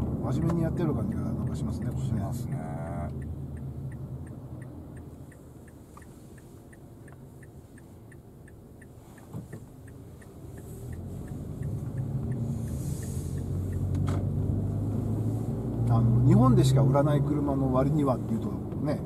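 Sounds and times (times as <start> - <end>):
car engine and tyre rumble: 0.0 - 19.0
turn signal ticking: 0.0 - 19.0.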